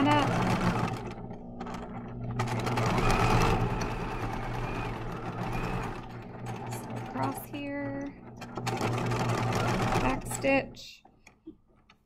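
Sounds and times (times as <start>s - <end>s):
electric sewing machine stitching: 0.0s - 10.9s.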